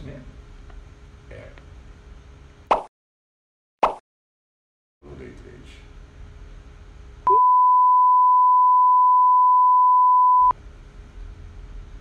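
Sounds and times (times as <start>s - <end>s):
high-pitched censor beep: 7.3s - 10.5s.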